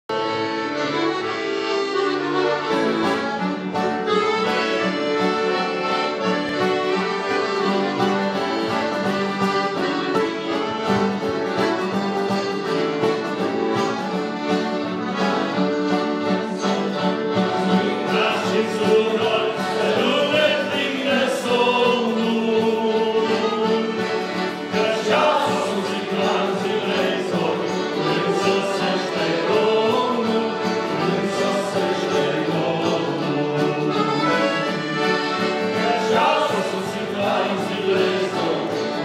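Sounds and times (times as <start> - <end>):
accordions playing melody: 0.1 - 39.0
electric guitar: 0.1 - 39.0
strummed acoustic guitar: 0.1 - 39.0.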